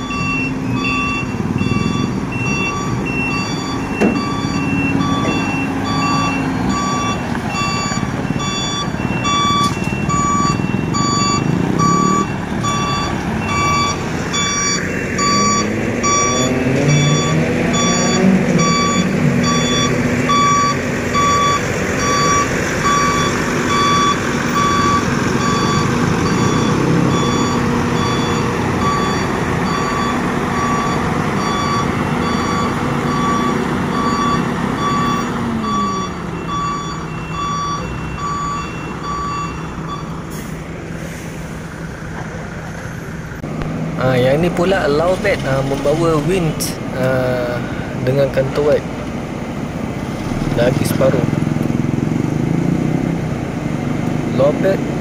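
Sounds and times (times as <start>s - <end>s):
truck reversing alarm beeping: 0.0s - 48.9s, 50.1s - 53.0s
diesel truck engine: 0.0s - 55.0s.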